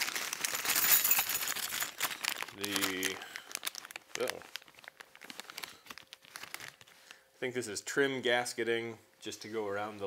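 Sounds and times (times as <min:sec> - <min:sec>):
plastic bag crinkling: 0:00.0 - 0:07.3.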